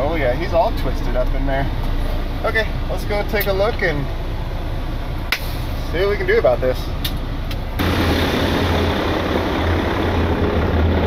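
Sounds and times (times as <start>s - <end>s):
diesel engine rumbling: 0.0s - 11.0s.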